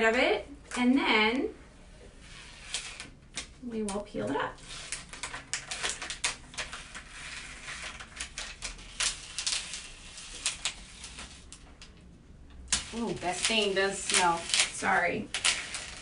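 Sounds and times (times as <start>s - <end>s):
rasping peel: 2.2s - 3.2s
tape peeling crackling clicks: 2.6s - 16.0s.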